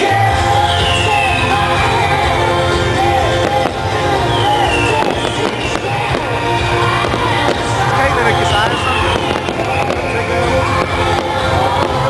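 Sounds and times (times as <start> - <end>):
fireworks bangs and crackles: 0.0 - 12.0
loud music with steady bass: 0.0 - 12.0.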